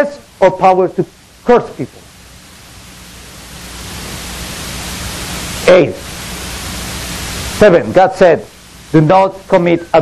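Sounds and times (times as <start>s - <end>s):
room hiss: 0.0s - 10.0s
low hum: 1.1s - 7.8s.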